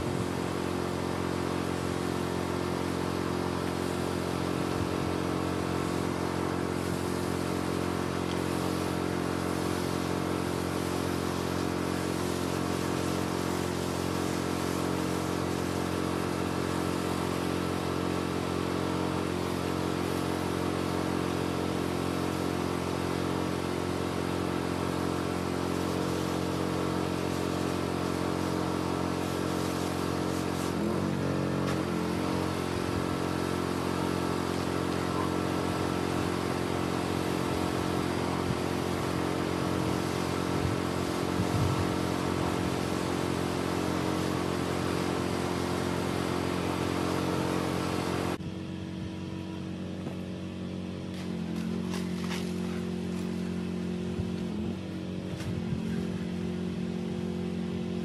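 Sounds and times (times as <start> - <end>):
water spraying hiss: 0.0 - 48.4, 51.1 - 57.1
pressure washer engine running: 0.0 - 58.0.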